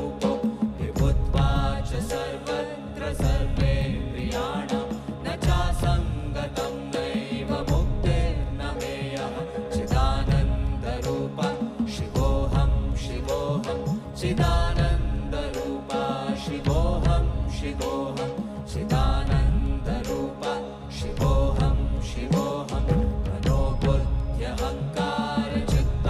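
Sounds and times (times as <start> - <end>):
group singing a chant: 0.0 - 26.0
drum beat: 3.2 - 6.6.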